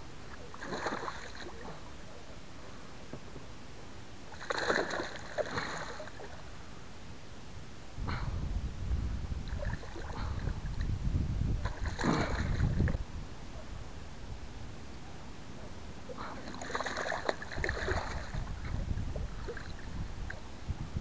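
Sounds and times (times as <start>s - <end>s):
fish splashing at the surface: 0.6s - 1.7s, 4.4s - 6.3s, 16.4s - 18.4s.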